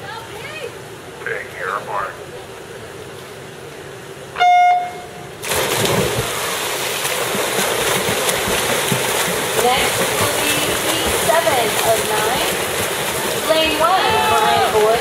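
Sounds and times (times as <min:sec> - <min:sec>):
water splashing from swimmers: 0:05.4 - 0:15.0.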